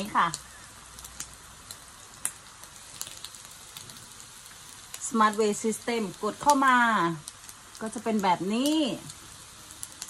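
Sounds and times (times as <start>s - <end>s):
fat crackling pops: 0.0s - 10.0s
meat sizzling on a grill pan: 0.0s - 10.0s.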